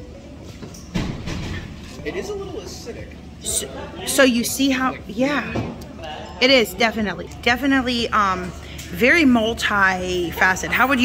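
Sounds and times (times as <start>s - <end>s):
indistinct background talk: 2.1s - 11.0s.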